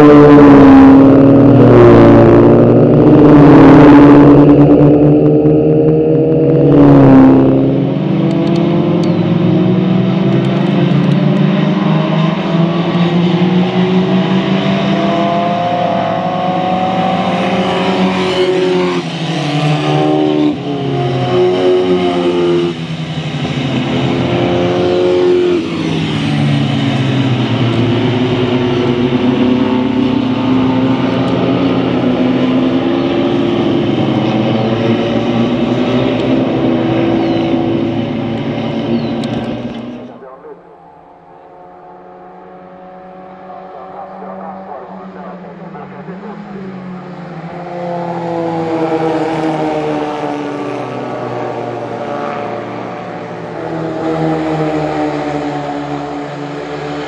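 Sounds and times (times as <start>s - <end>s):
racing car engines revving past: 0.0s - 57.0s.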